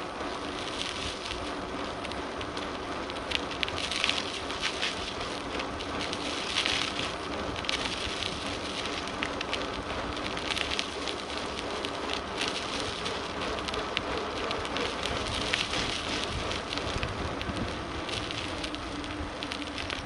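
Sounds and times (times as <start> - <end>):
tyres rolling on rough asphalt: 0.0 - 20.0.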